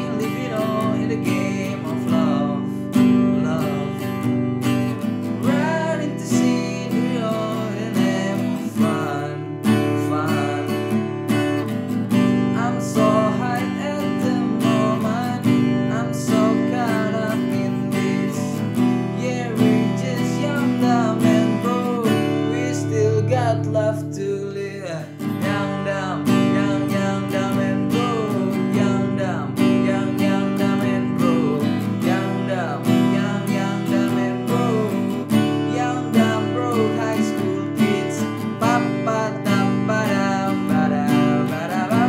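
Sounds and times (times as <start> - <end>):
acoustic guitar strumming: 0.0 - 42.0
man singing: 0.0 - 42.0.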